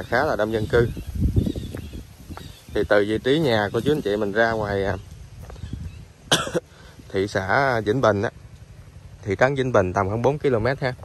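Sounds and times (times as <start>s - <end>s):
loud close cough: 6.3s - 6.8s.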